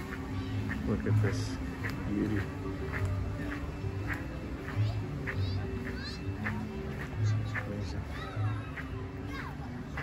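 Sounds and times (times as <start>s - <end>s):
background music: 0.0s - 10.0s
people talking at a distance: 0.0s - 10.0s.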